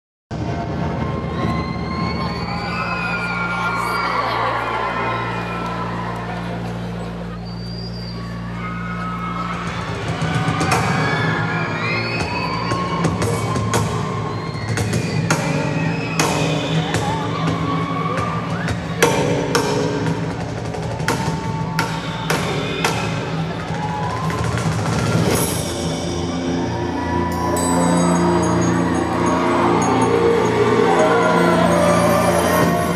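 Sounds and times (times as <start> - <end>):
crowd screaming: 0.3 - 32.9
low synth drone: 25.3 - 32.9.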